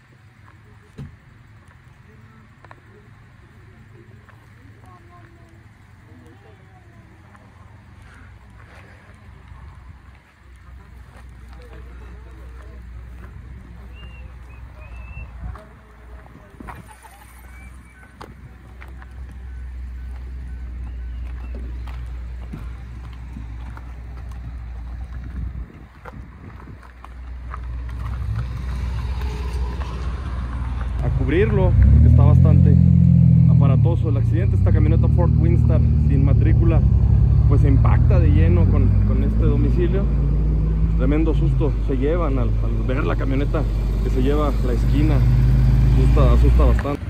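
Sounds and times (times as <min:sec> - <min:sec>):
faint voices: 0:00.0 - 0:28.6
wind rumbling on microphone: 0:22.3 - 0:32.2.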